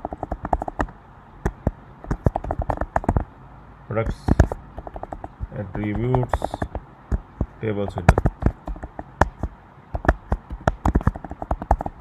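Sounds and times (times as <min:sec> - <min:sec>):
fast keyboard typing: 0:00.0 - 0:03.3, 0:04.0 - 0:12.0.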